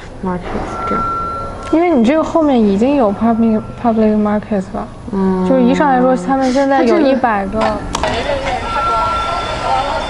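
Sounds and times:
steady traffic-like noise: 0.0s - 10.0s
thin steady tone: 0.4s - 10.0s
faint indistinct voices: 1.7s - 10.0s.

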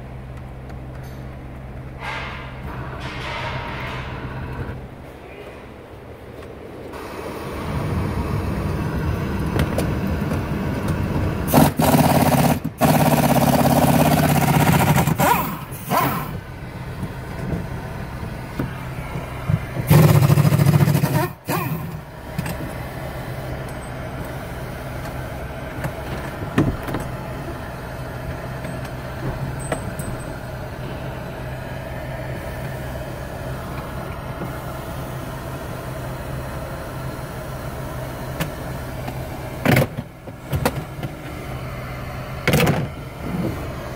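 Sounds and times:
truck engine running inside cab: 0.0s - 43.9s.

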